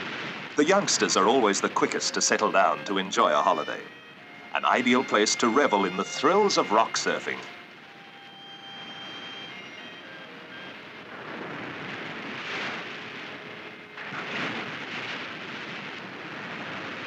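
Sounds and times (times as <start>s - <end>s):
surf rushing over rocks: 0.0s - 8.0s, 10.8s - 17.0s.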